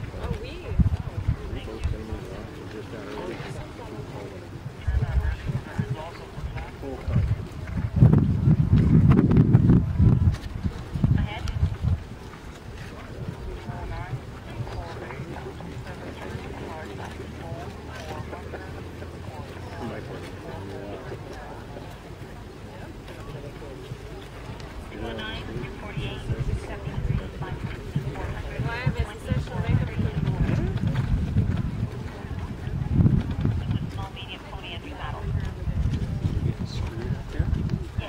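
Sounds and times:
indistinct voices talking: 0.0 - 38.0
wind rumble on microphone: 0.0 - 38.0.

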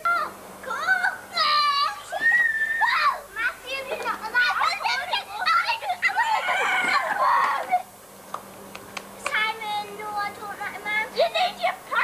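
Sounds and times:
young children chattering: 2.8 - 7.9, 9.3 - 12.0.

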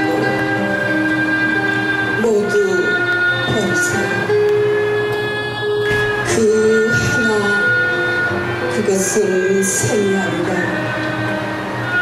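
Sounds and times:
bowed fiddle long notes: 0.0 - 12.0.

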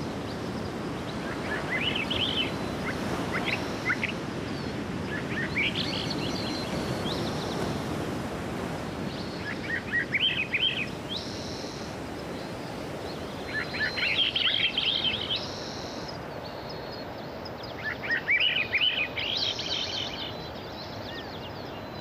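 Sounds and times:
songbird singing: 0.0 - 22.0.

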